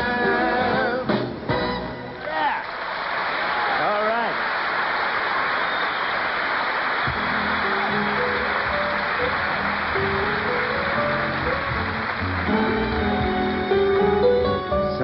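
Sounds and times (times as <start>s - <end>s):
audience applauding: 2.2s - 15.0s
band playing sustained chords: 7.1s - 15.0s.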